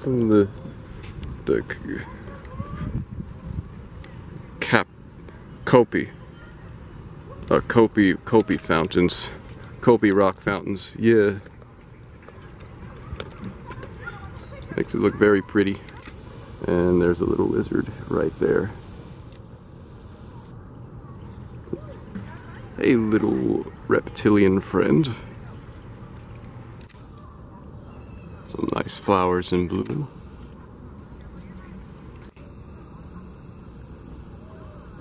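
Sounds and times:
water trickling from fountain: 0:20.6 - 0:28.5.

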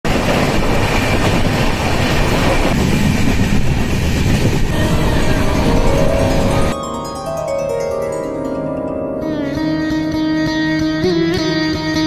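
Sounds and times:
train wheels rumbling and rattling: 0:00.1 - 0:06.7.

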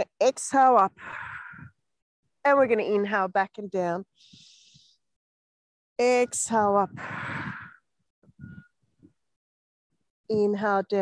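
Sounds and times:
woman breathing out: 0:06.9 - 0:07.8.

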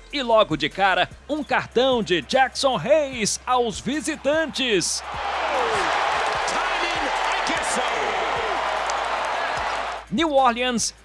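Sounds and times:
arena crowd noise: 0:03.6 - 0:10.1.

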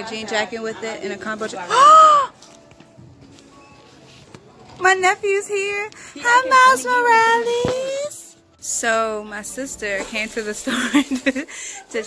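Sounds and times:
faint background noise: 0:00.0 - 0:12.0
woman squealing: 0:01.7 - 0:02.4.

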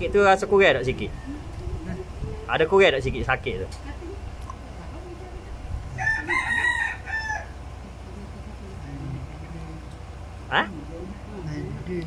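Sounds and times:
rooster crowing: 0:05.9 - 0:07.6.

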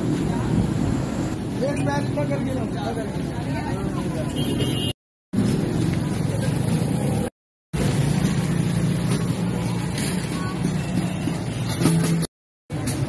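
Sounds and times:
motor traffic: 0:00.0 - 0:13.0
voices of passers-by: 0:00.0 - 0:13.0.

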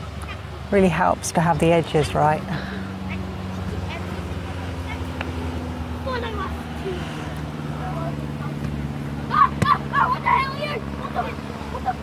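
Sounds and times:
boys shouting in distance: 0:02.6 - 0:12.0.

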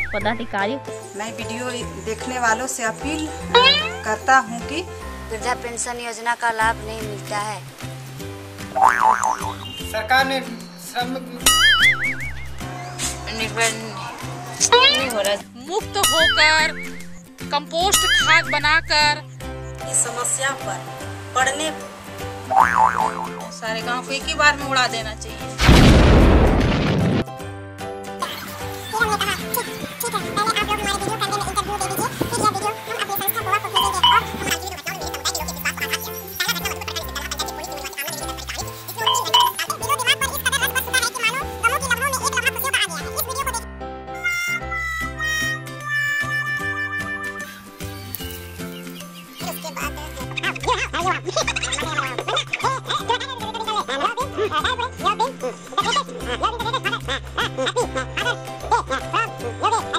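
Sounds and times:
held bass notes: 0:00.0 - 0:00.8, 0:16.0 - 0:19.6
background music with bass line: 0:00.0 - 0:06.0, 0:06.6 - 0:59.9
cartoon boing sound effect: 0:03.5 - 0:04.1, 0:08.8 - 0:09.6, 0:11.5 - 0:12.6, 0:14.6 - 0:15.1, 0:17.9 - 0:18.9, 0:22.5 - 0:23.5.

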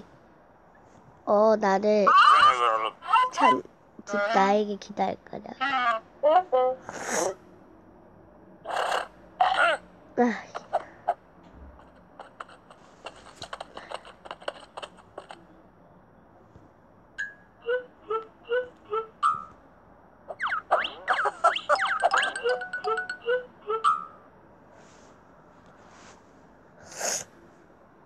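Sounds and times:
playful cartoon music: 0:20.3 - 0:24.2
short plinking notes: 0:21.8 - 0:24.2.

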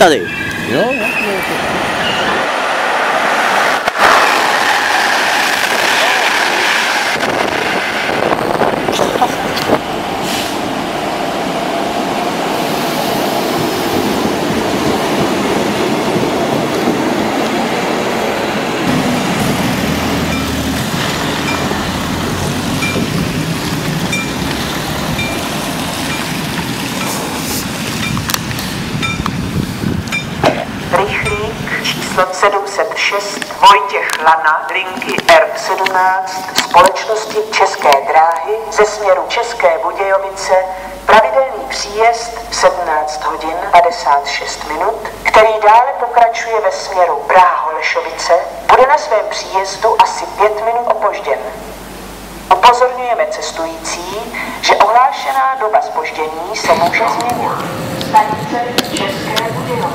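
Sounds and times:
train wheels rumbling on rails: 0:00.0 - 0:40.2, 0:52.6 - 0:59.9.

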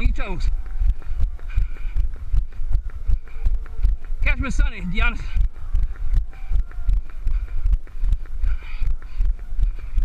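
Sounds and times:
running footsteps on asphalt: 0:00.0 - 0:10.0.

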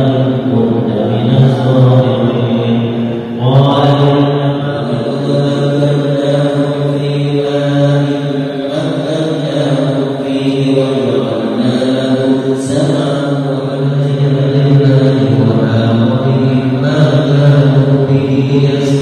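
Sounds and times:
man chanting recitation: 0:00.0 - 0:19.0.

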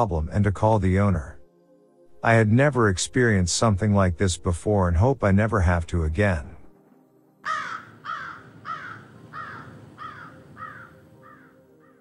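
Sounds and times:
crow cawing: 0:07.4 - 0:12.0.

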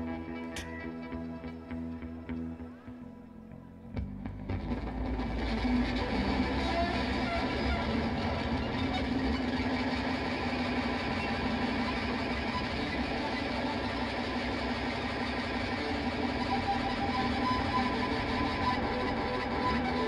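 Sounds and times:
distorted electric guitars: 0:00.0 - 0:20.0
sustained low drone: 0:00.0 - 0:20.0.

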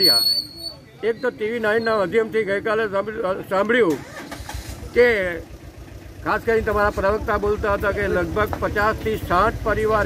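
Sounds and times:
vehicle engine rumbling: 0:00.0 - 0:10.0
man speaking: 0:01.0 - 0:03.9, 0:06.2 - 0:10.0.

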